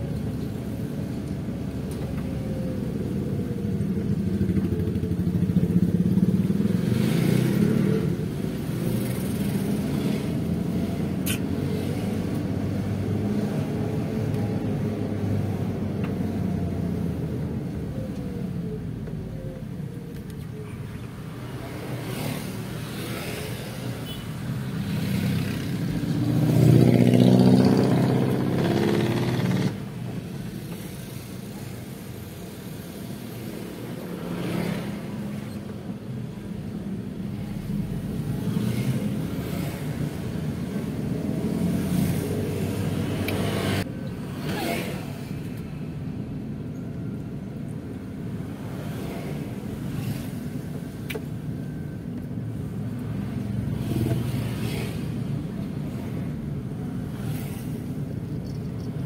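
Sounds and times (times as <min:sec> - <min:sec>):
car engine and road noise: 0:00.0 - 0:59.0
motorcycles passing: 0:04.1 - 0:14.2, 0:21.2 - 0:30.2, 0:37.2 - 0:45.9, 0:52.5 - 0:58.9.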